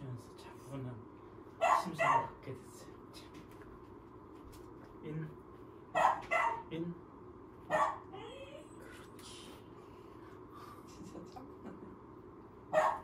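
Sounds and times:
puppy barking: 1.6 - 2.4, 6.0 - 6.7, 7.7 - 8.1, 12.7 - 13.0.

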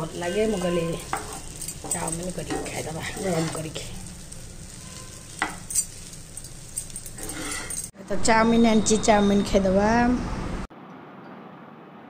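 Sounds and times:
spatula stirring noodles in pan: 0.0 - 7.9
light sizzle: 0.0 - 8.0.

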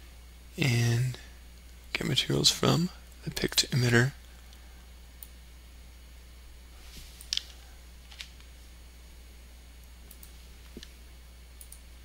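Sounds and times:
steady low hum: 0.0 - 12.0
computer mouse clicks: 10.1 - 10.9, 11.6 - 11.8.

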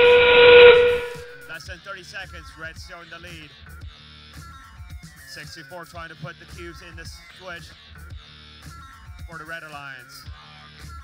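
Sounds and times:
whistle-like tone with hiss: 0.0 - 1.5.

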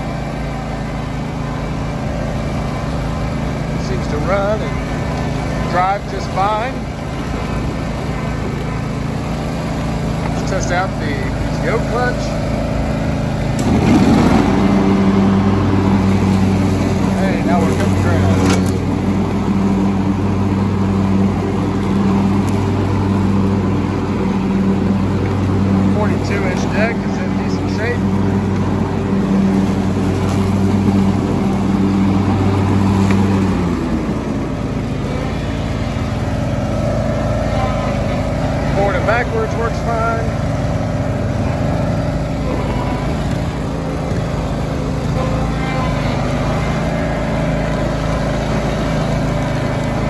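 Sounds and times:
lawn tractor engine running: 0.0 - 50.0.

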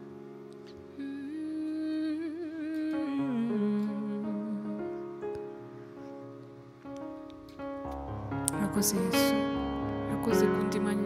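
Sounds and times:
person humming a slow melody: 0.9 - 5.5
electronic keyboard chords: 2.9 - 11.0.

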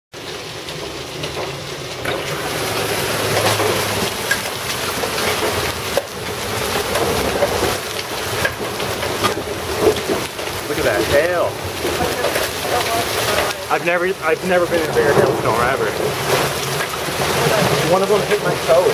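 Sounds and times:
hail pelting the ground: 0.2 - 18.9.

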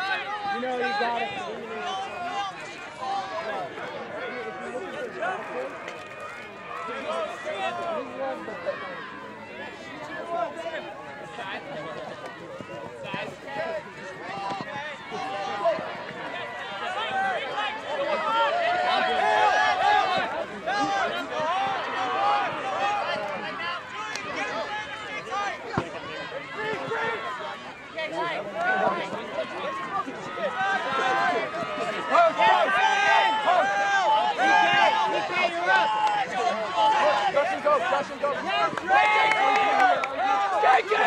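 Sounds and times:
players shouting: 0.0 - 41.0.

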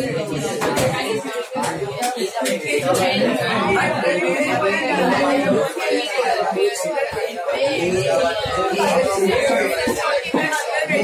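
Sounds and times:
students chattering: 0.0 - 11.0.

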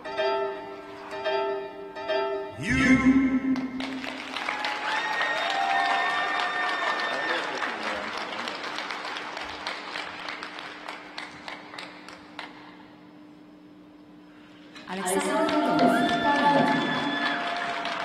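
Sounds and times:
crowd cheering: 2.6 - 10.3, 15.0 - 18.0
audience applauding: 3.5 - 12.8, 15.1 - 18.0.

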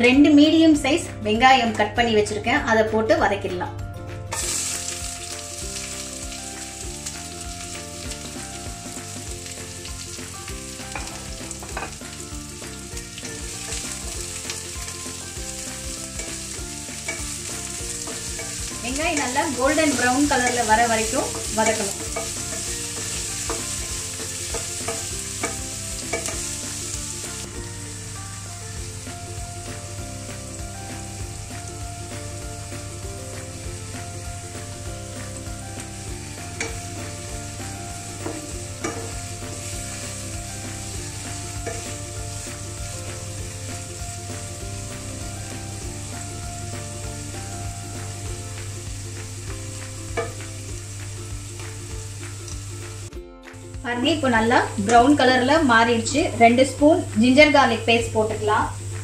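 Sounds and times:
onions sizzling in oil: 4.3 - 59.0.

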